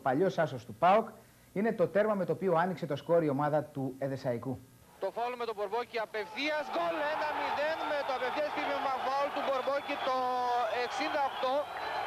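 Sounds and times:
man narrating: 0:00.0 - 0:11.7.

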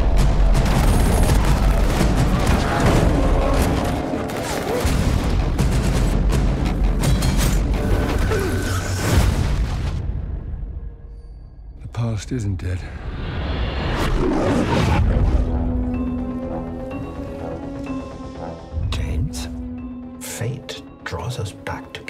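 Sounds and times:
loud trailer music: 0:00.0 - 0:11.4, 0:12.9 - 0:22.0.

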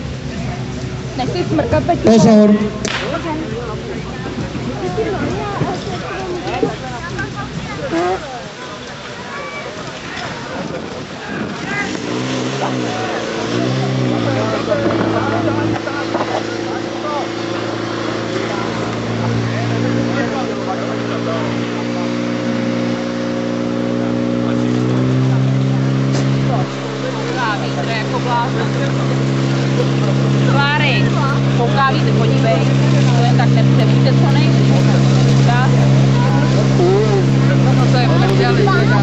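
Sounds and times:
pump engine running: 0:00.0 - 0:39.0
voices shouting: 0:25.7 - 0:39.0.

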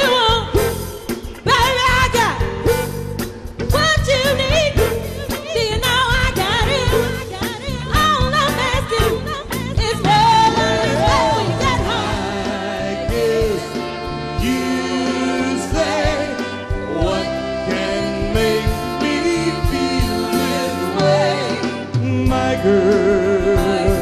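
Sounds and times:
band playing: 0:00.0 - 0:24.0
steady drum beat: 0:00.0 - 0:24.0.

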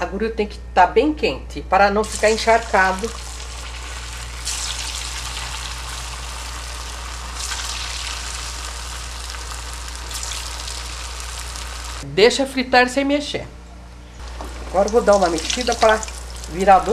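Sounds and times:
pastries deep-frying in hot fat: 0:02.0 - 0:12.0, 0:14.2 - 0:16.9.

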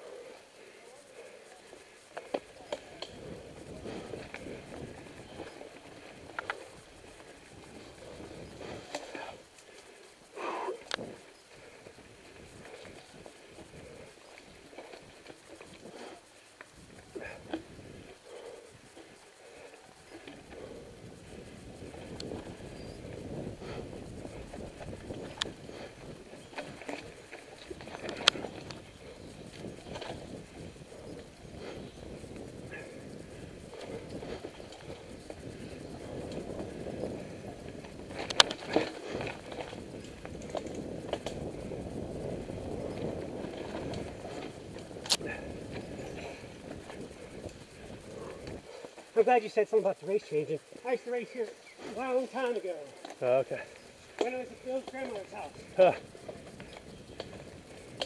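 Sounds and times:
bike rattling over bumps: 0:00.0 - 0:58.0
bike tyres on dirt trail: 0:00.0 - 0:58.0.

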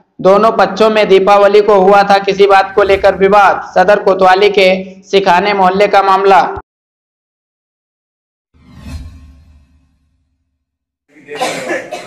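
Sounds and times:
person coughing loudly: 0:11.2 - 0:12.0.

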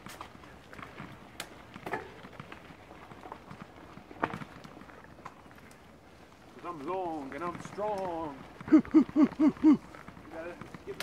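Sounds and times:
bike clicks and knocks over bumps: 0:00.0 - 0:11.0
bike tyres rolling on dirt: 0:00.0 - 0:11.0.

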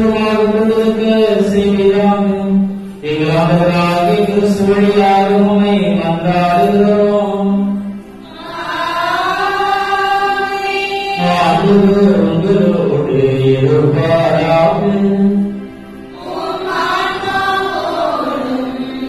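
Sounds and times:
man chanting: 0:00.0 - 0:07.9, 0:11.2 - 0:15.6.

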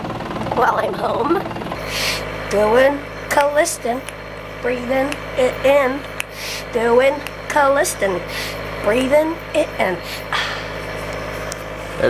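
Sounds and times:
mechanical drone of breathing equipment: 0:01.5 - 0:03.3, 0:05.3 - 0:12.0
short breathy hiss: 0:01.8 - 0:02.2, 0:06.3 - 0:06.7.

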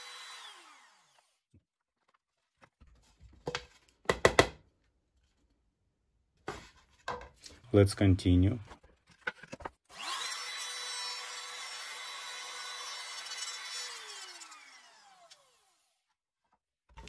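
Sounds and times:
router motor running: 0:00.0 - 0:01.4, 0:09.9 - 0:15.9.

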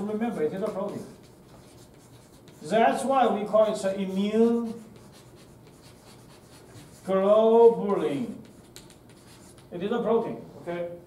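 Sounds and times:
chalk writing on chalkboard: 0:00.0 - 0:09.9.

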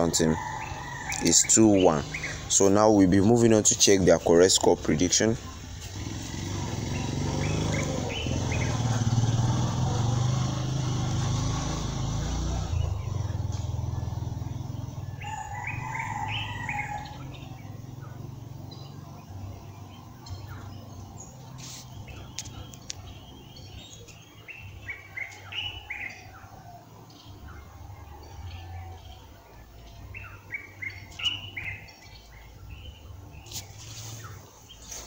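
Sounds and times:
birds chirping: 0:00.0 - 0:35.0.

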